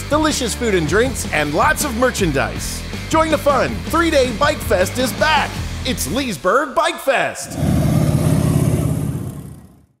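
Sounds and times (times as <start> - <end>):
motorcycle engine passing by: 7.5 - 10.0.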